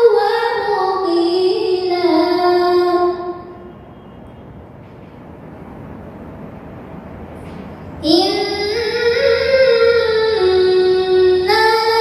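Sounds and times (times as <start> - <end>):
girl chanting melodically: 0.0 - 3.6, 8.0 - 12.0.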